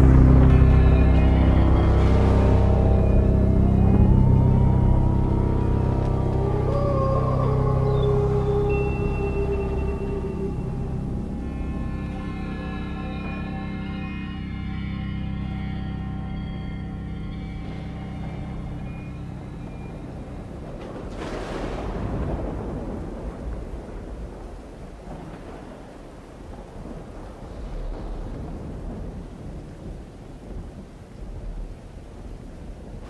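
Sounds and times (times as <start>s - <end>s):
eerie music with held tones: 0.0s - 23.0s
rain hissing: 0.0s - 33.0s
thunder rumbling: 0.0s - 33.0s.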